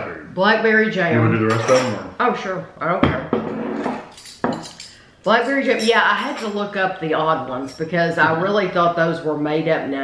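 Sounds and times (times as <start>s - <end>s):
glass jars clinking: 1.5s - 2.0s, 4.0s - 5.0s
metal cutlery handled: 4.1s - 5.1s, 7.2s - 7.9s.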